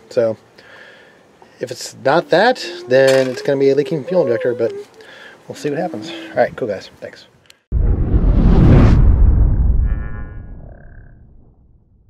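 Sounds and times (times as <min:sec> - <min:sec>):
low rumble: 0:07.7 - 0:12.0.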